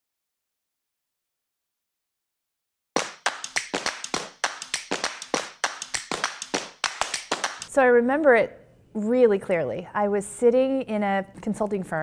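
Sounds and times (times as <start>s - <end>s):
rapid sharp percussive hits: 3.0s - 7.7s.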